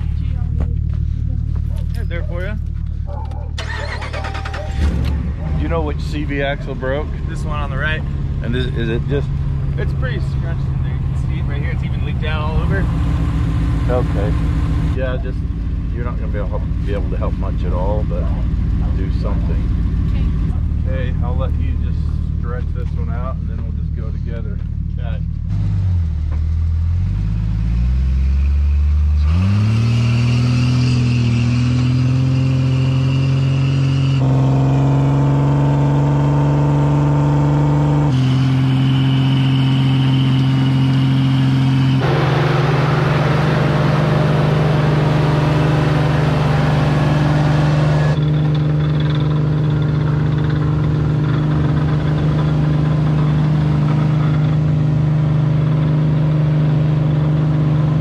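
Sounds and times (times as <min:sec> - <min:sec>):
engines revving under load: 0:00.0 - 0:58.0.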